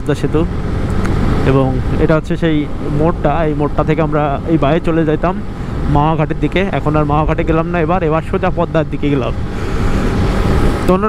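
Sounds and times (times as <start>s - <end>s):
man talking: 0.0s - 0.5s, 1.4s - 9.4s
motorcycle rumble: 0.0s - 11.0s.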